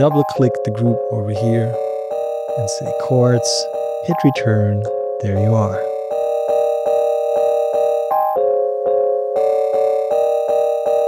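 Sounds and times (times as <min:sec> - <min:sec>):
looped keys chord: 0:00.0 - 0:11.0.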